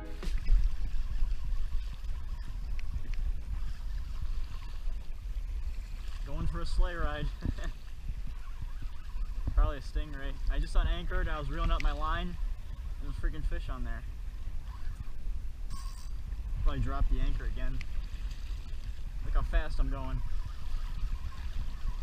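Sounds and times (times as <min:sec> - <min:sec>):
water washing along hull: 0:00.0 - 0:15.6, 0:16.2 - 0:22.0
wind rumble on microphone: 0:00.0 - 0:22.0.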